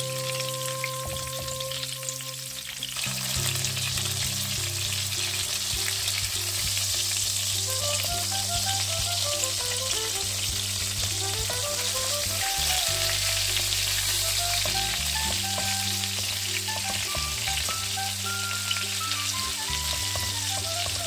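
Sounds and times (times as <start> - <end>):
background music with bass line: 0.0 - 21.0
food sizzling in a pan: 0.0 - 21.0.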